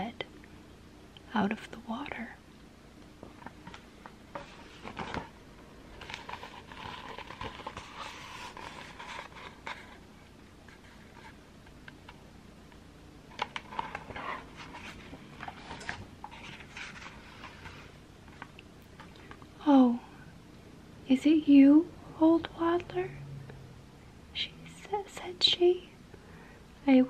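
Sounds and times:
paper rustling: 3.4 - 10.0, 13.4 - 18.5
fingers scraping on pages: 6.0 - 10.0.

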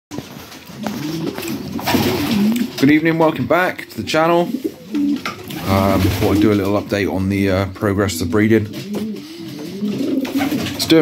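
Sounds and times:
wings fluttering: 0.1 - 2.8, 8.7 - 10.9
pigeons cooing: 0.1 - 11.0.

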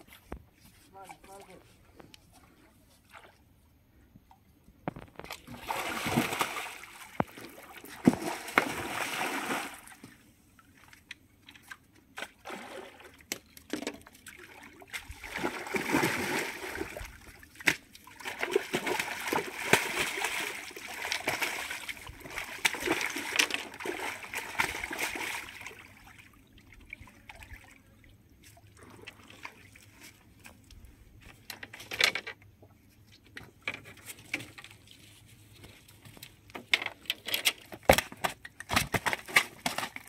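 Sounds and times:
fish slapping on stony ground: 8.0 - 9.0, 17.6 - 25.2, 37.9 - 40.0.

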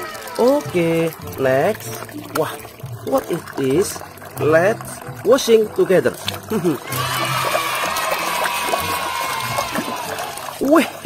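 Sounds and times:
water splashing in plastic basin: 0.0 - 11.0.

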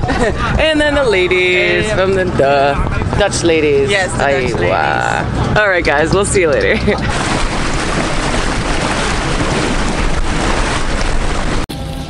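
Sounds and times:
river water splashing along boat hull: 0.0 - 12.0.

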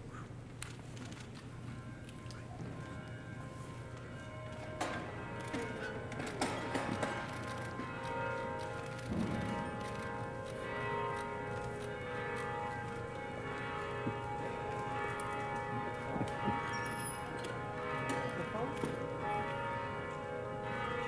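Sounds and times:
bell-like ringing tones: 1.6 - 18.8.

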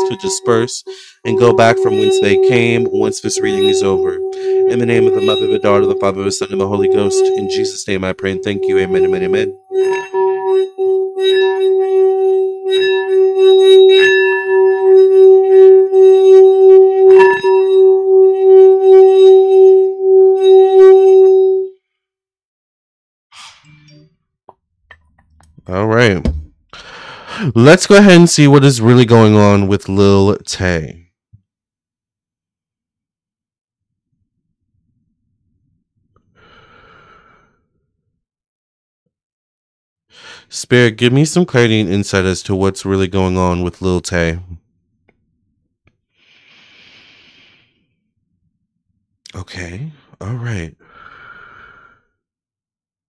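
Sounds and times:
singing bowl struck and rimmed: 0.0 - 21.7
man sighing: 26.8 - 27.6.

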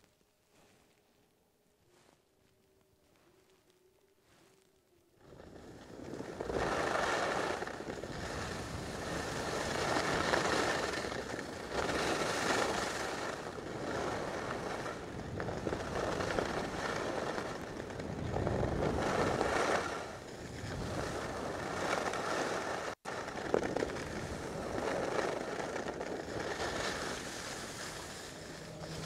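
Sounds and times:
skis scraping over snow: 0.5 - 1.0, 4.2 - 29.0
wind on microphone: 5.2 - 29.0.

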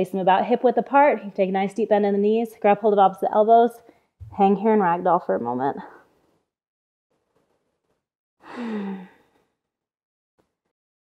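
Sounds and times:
woman sighing: 8.4 - 9.3.

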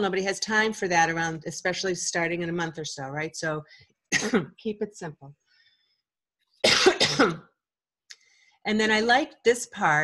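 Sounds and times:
woman clearing her throat: 4.2 - 4.6, 6.6 - 7.5.

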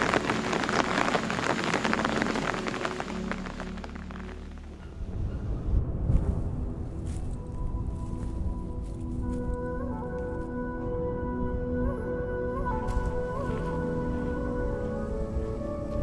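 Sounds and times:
rain pattering: 0.0 - 5.0
low rumble: 0.0 - 8.8
music with held tones: 0.0 - 16.0.

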